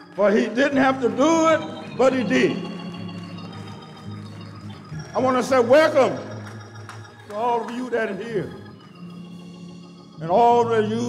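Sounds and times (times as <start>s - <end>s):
organ sustained chords: 0.0s - 11.0s.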